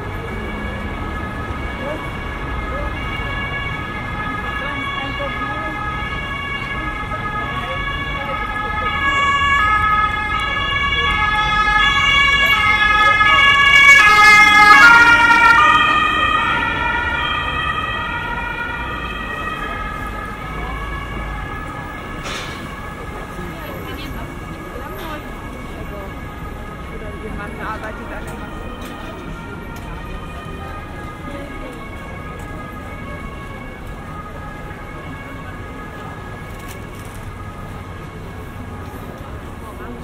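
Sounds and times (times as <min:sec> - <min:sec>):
street traffic rumble: 0:00.0 - 0:40.0
two-tone siren: 0:00.0 - 0:40.0.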